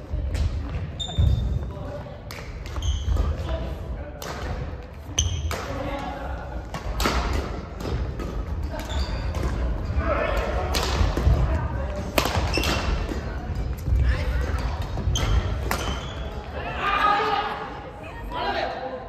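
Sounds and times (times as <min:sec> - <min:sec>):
shoe squeaks on court floor: 0:00.9 - 0:01.6, 0:02.7 - 0:03.4, 0:05.1 - 0:05.5, 0:08.8 - 0:09.4, 0:15.1 - 0:16.5
rackets striking shuttlecock: 0:12.0 - 0:13.9, 0:14.5 - 0:16.1.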